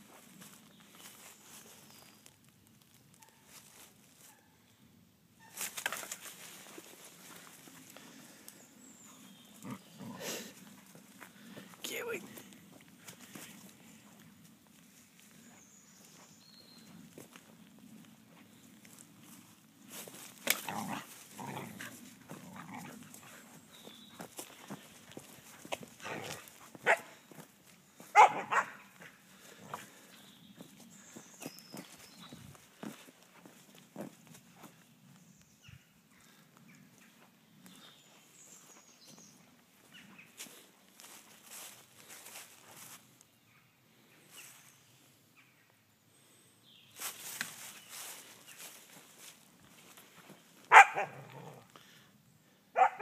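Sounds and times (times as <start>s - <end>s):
rustling and scraping in leaves: 0.0s - 4.4s, 5.4s - 8.3s, 16.9s - 27.0s, 40.3s - 43.1s, 47.0s - 50.5s
dog barking: 26.8s - 27.1s, 28.1s - 28.9s, 50.7s - 51.3s, 52.8s - 53.0s.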